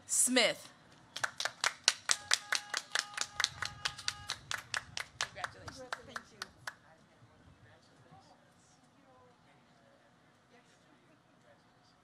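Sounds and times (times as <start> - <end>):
person clapping: 1.2 - 6.8.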